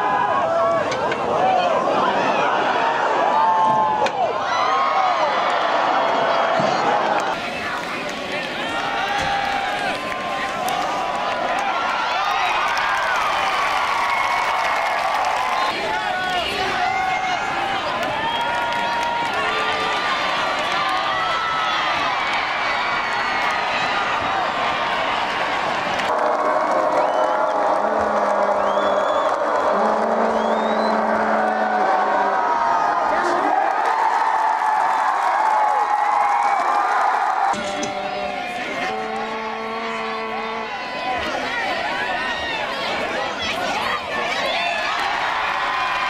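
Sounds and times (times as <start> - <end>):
crowd shouting and cheering: 0.0 - 46.0.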